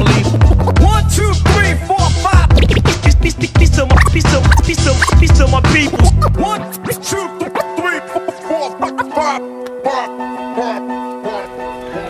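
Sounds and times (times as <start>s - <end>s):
turntable scratching: 0.0s - 1.1s, 2.0s - 9.2s
hip-hop beat: 0.0s - 10.8s.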